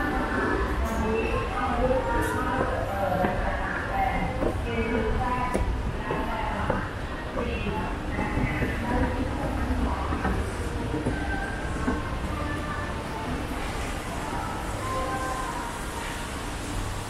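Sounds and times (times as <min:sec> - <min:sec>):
indistinct voices: 0:00.0 - 0:16.7.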